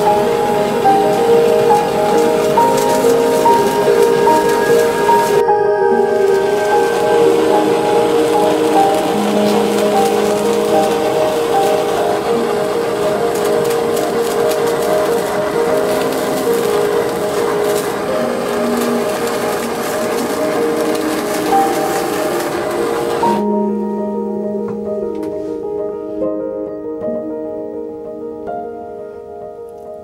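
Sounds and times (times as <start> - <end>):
gas torch hissing: 0.0 - 23.6
soft background music: 0.0 - 30.0.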